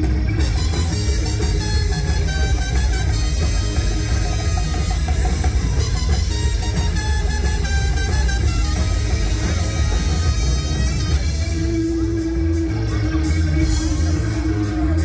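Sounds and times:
bass: 0.0s - 15.0s
drum kit beat: 0.0s - 15.0s
electric guitars: 0.0s - 15.0s
trumpet: 0.3s - 12.3s.

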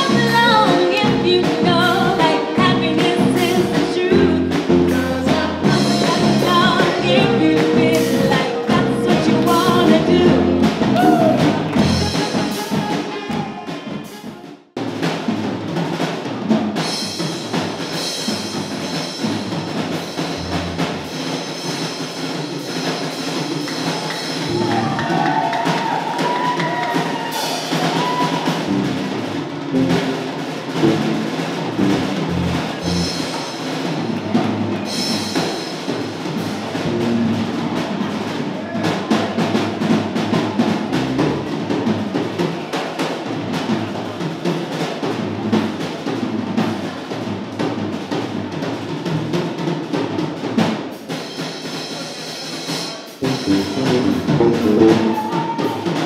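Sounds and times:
band playing upbeat music: 0.0s - 14.3s, 16.8s - 42.3s, 53.1s - 56.0s
drum kit beat: 0.0s - 56.0s.

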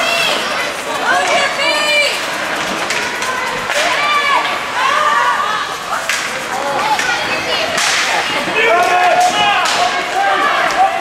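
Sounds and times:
people shouting: 0.0s - 11.0s
hockey stick slapping puck: 6.1s - 8.4s.

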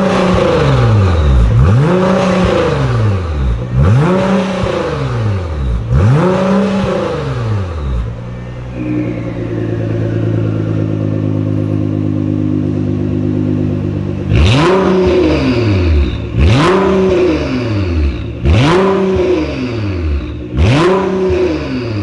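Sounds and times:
car engine idling: 0.0s - 22.0s
car engine revving: 0.0s - 22.0s.

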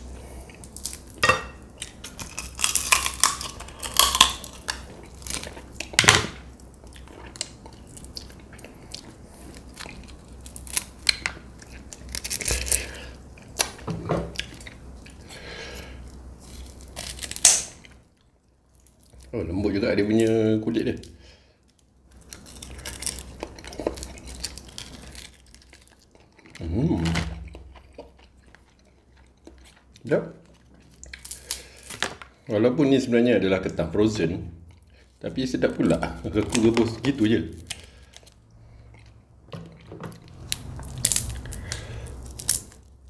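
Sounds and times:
crab shell cracking: 1.8s - 6.7s, 16.8s - 17.9s, 40.3s - 42.9s
wet chewing of crab: 22.2s - 32.0s.

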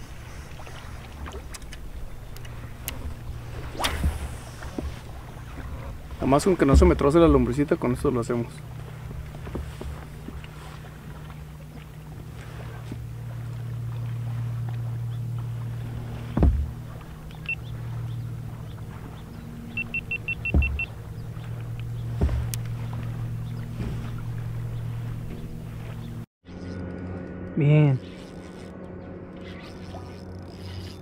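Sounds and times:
low engine hum: 0.0s - 31.0s
dull knocks: 6.5s - 7.6s, 16.1s - 17.2s, 18.1s - 25.5s
short high beeps: 19.8s - 20.9s.

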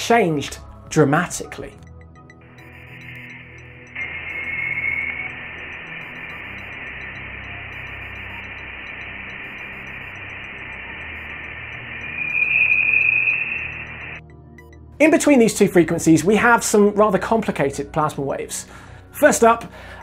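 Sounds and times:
steady high hiss: 2.5s - 14.2s
whistle-like tone: 2.6s - 14.2s.

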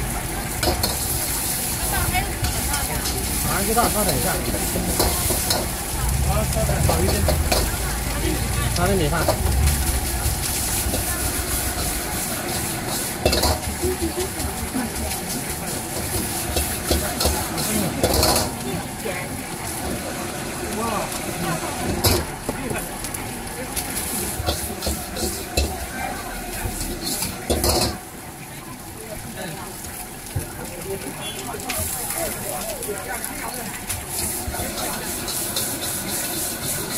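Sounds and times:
rice sizzling in a wok: 0.0s - 36.9s
metal utensils scraping a wok: 0.5s - 19.0s, 21.4s - 22.4s, 23.8s - 28.0s, 33.2s - 36.9s
low rumble: 4.6s - 12.4s.

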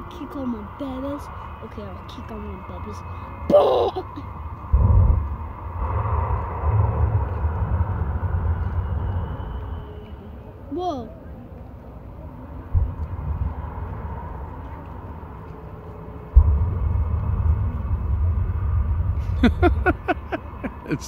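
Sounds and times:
low rumble: 4.2s - 10.7s, 12.6s - 21.0s
deep boom: 4.6s - 10.0s, 12.7s - 14.6s, 16.4s - 21.0s
thump: 12.8s - 13.4s
person laughing: 19.3s - 21.0s.

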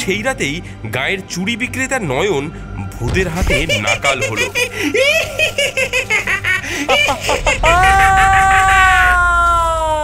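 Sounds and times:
cartoon ghost laughing: 3.8s - 9.2s.

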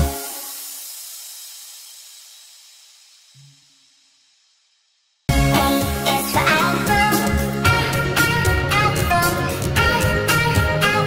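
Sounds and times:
high even hiss: 0.0s - 4.2s
children's song: 5.3s - 11.0s.

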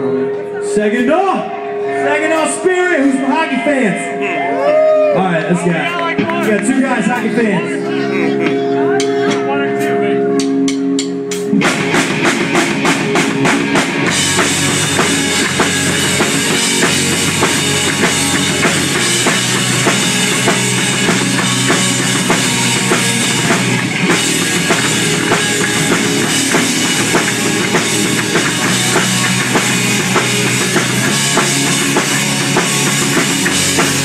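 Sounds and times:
punk rock band playing: 0.0s - 34.0s
drums fast beat: 5.6s - 7.7s, 8.3s - 34.0s.

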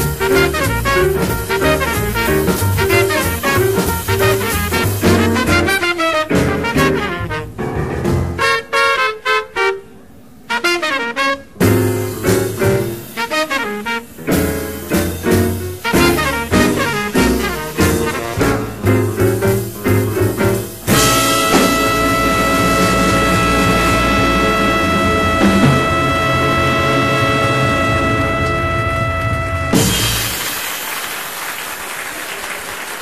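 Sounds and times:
cymbals washing: 0.0s - 5.6s, 12.0s - 31.0s
trumpet and saxophone clipped notes: 0.0s - 7.7s, 8.4s - 30.6s
jazz band sustained chord: 0.0s - 30.6s.

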